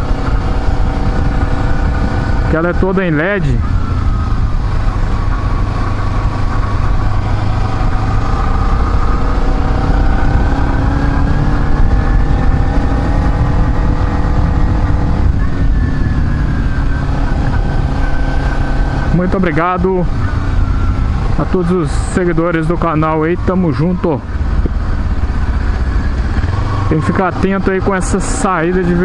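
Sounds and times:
motorcycle engine accelerating: 0.0 - 29.0.

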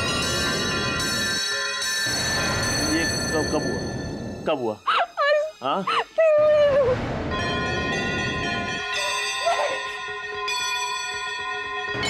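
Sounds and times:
high wavering wailing cry: 4.8 - 7.0, 8.9 - 10.0
eerie music chord: 7.0 - 12.0.

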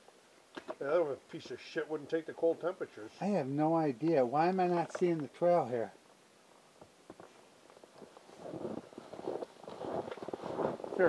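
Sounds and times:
rustling and scuffing: 7.1 - 11.0.

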